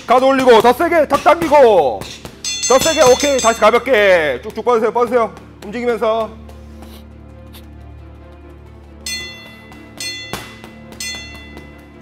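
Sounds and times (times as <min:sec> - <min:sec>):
boxing gloves punching heavy bag: 0:00.0 - 0:04.2, 0:09.6 - 0:12.0
background music with bell-like notes: 0:00.0 - 0:12.0.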